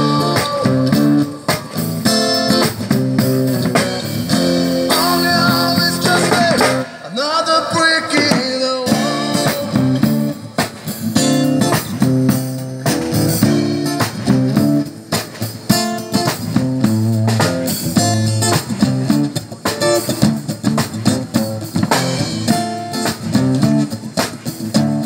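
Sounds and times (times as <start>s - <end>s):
acoustic guitar strumming chords: 0.0s - 15.0s
steady drum beat: 0.0s - 25.0s.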